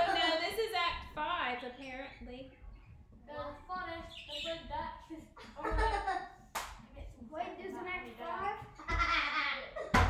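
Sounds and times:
sharp hand clap: 6.5s - 6.8s.

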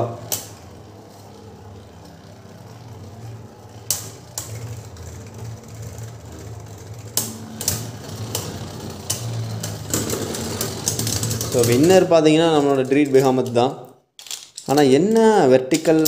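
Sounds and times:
spinning tops whirring: 0.0s - 16.0s
spinning tops clacking together: 7.1s - 13.6s, 14.2s - 16.0s.

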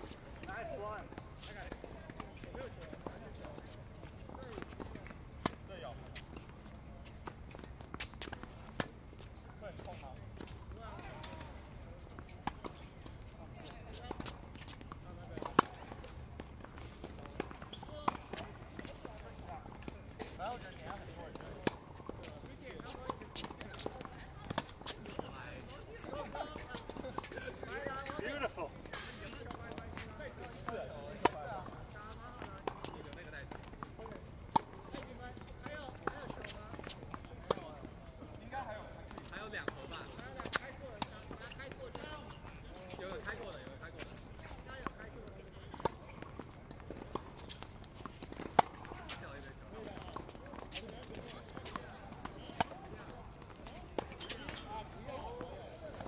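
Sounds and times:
tennis balls struck and bouncing: 0.1s - 25.4s, 26.0s - 37.9s, 39.0s - 56.0s.

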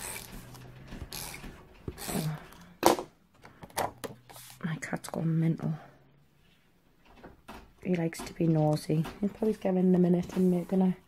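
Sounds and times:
tape runner rasping on paper: 0.0s - 2.4s.

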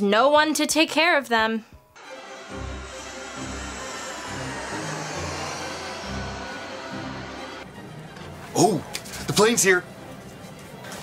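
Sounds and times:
jet landing rushing noise: 2.0s - 8.5s.

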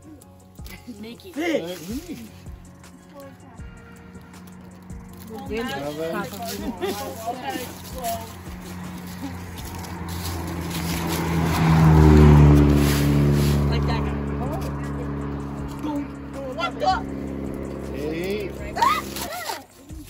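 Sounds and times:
car passing by: 0.9s - 20.0s.

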